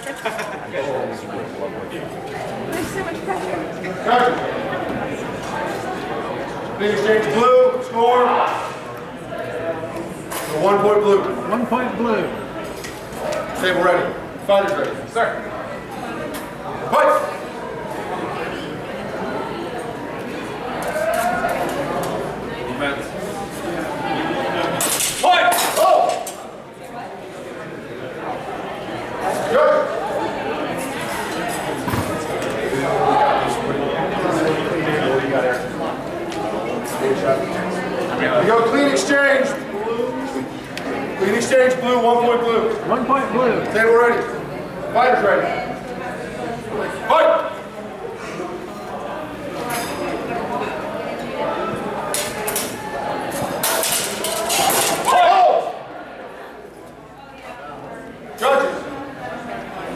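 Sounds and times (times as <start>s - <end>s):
murmur of voices: 0.0s - 59.9s
fencing blades clashing: 24.8s - 26.4s, 52.1s - 55.2s.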